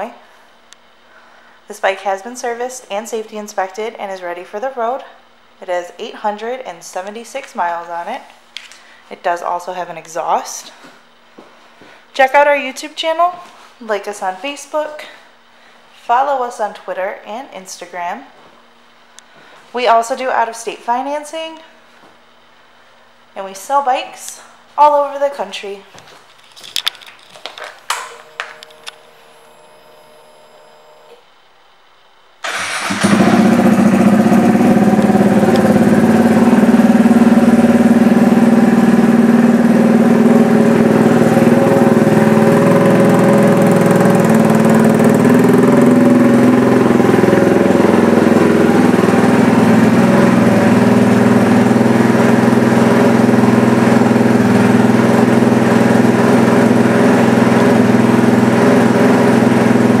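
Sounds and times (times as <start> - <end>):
motorcycle engine starting and idling: 32.4 - 60.0.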